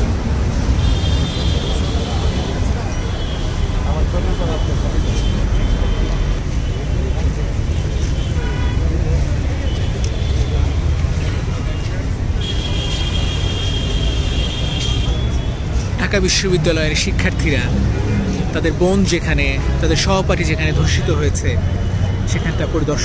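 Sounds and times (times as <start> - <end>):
crowd chatter: 0.0 - 23.0
road traffic rumble: 0.0 - 23.0.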